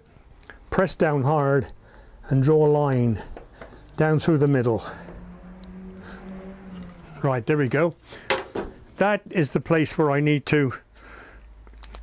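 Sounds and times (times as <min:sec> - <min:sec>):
low hum: 0:02.9 - 0:09.0.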